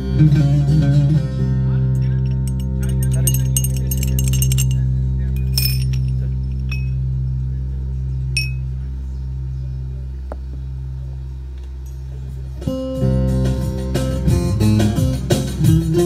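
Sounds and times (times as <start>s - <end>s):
ringing lute strings: 0.2s - 7.4s
chime-like string clinks: 2.0s - 7.2s, 8.4s - 8.7s.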